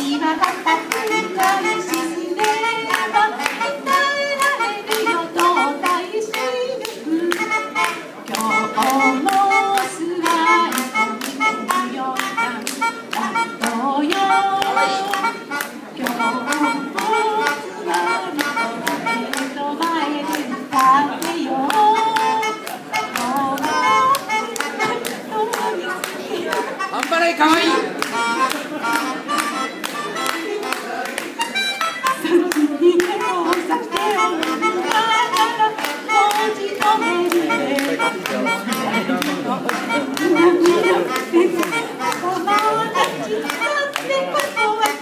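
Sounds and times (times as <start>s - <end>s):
woman singing: 0.0s - 15.4s, 16.0s - 27.7s, 32.1s - 45.0s
hand clapping in time: 0.0s - 45.0s
melodica playing: 0.0s - 45.0s
voices: 0.0s - 45.0s.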